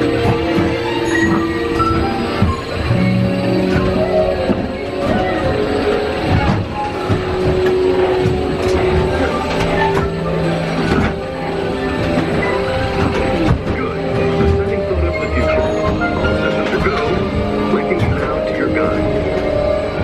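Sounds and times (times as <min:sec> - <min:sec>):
low rumble of ride vehicle: 0:00.0 - 0:20.0
ride soundtrack music: 0:00.0 - 0:20.0.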